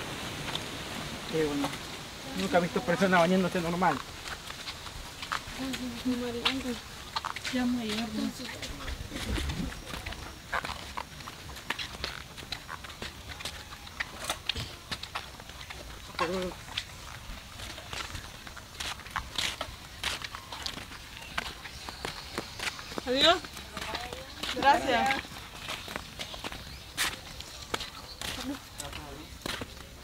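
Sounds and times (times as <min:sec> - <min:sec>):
footsteps on dirt and dry leaves: 0:01.4 - 0:30.0.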